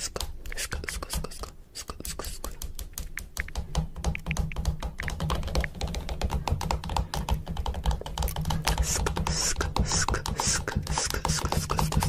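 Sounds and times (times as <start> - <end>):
phone keyboard typing taps: 2.2 - 12.0.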